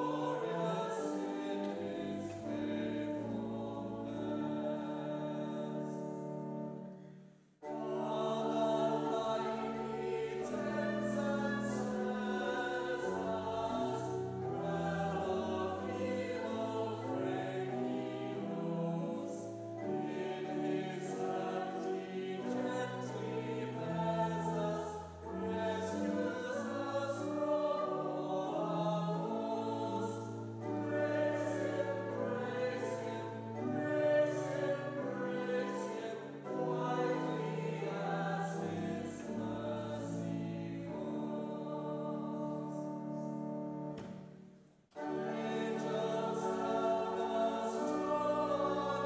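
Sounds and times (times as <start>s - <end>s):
congregation singing a hymn: 0.0s - 7.0s, 7.6s - 44.2s, 45.0s - 49.0s
pipe organ: 0.0s - 7.0s, 7.6s - 49.0s.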